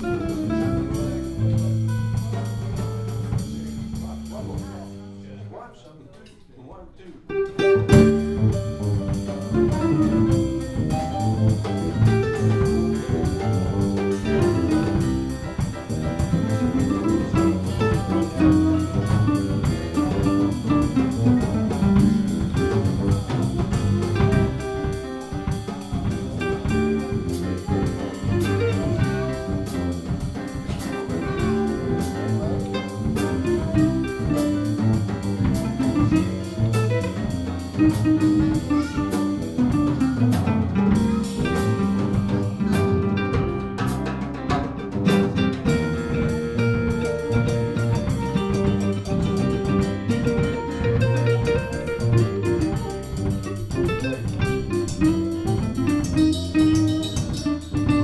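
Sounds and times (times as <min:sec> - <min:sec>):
electric guitar: 0:00.0 - 0:04.0, 0:07.3 - 0:58.0
digital piano: 0:00.0 - 0:04.7, 0:07.3 - 0:58.0
drum kit cymbal pulse: 0:00.0 - 0:05.1, 0:07.6 - 0:58.0
bass: 0:00.0 - 0:05.9, 0:07.3 - 0:58.0
small jazz group playing: 0:00.0 - 0:06.4, 0:07.1 - 0:58.0.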